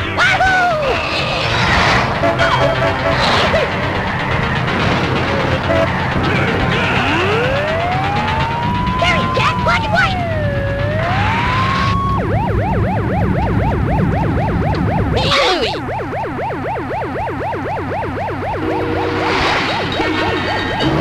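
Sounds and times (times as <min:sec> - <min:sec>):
cartoon police siren wailing and yelping: 0:06.9 - 0:21.0
steady low rumble: 0:10.2 - 0:15.2
multi-note horn-like tone: 0:18.6 - 0:19.5.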